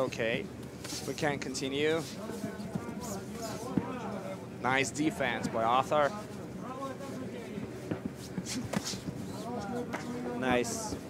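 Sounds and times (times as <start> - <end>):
sharp slaps: 7.9 - 9.2.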